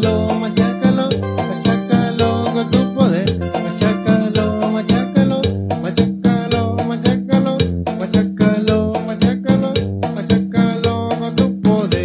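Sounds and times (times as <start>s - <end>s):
bass line: 0.0s - 12.0s
drum beat: 0.0s - 12.0s
keyboard playing instrumental tune: 0.0s - 12.0s.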